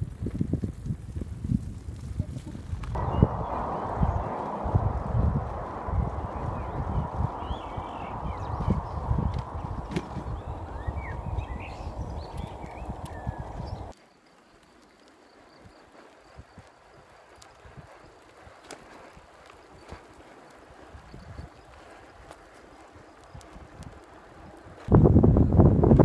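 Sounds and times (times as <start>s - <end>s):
bicycle rumbling bumps: 0.0s - 13.9s
wind buffeting microphone: 0.0s - 14.0s, 15.7s - 26.0s
bicycle riding noise: 0.0s - 26.0s
birds chirping: 3.0s - 13.9s.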